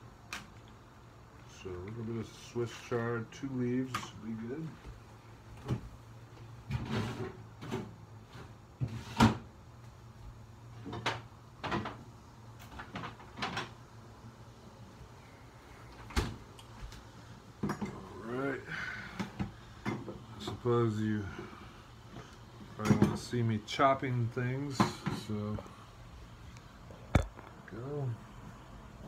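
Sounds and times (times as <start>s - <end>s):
refrigerator hum: 0.0s - 29.0s.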